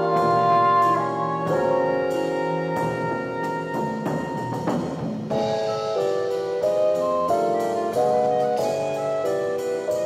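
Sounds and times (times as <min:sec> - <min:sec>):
jazz ensemble playing: 0:00.0 - 0:10.0.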